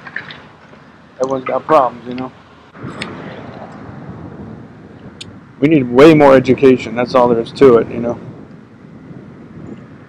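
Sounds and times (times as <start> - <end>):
bicycle road noise: 0.0 - 10.0
wind on microphone: 1.5 - 10.0.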